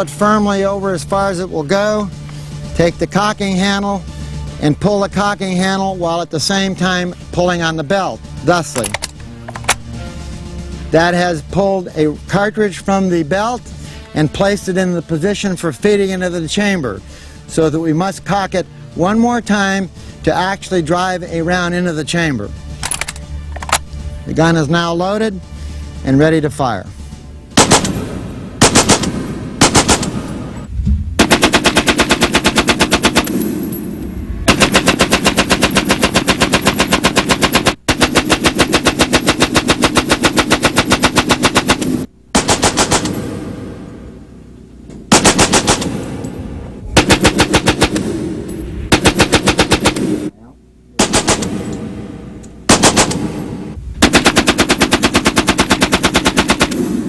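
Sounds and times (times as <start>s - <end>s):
machine gun firing bursts: 27.6s - 30.4s, 31.2s - 33.6s, 34.5s - 43.5s, 45.1s - 46.1s, 47.0s - 48.2s, 48.9s - 50.3s, 51.0s - 52.0s, 52.7s - 57.0s.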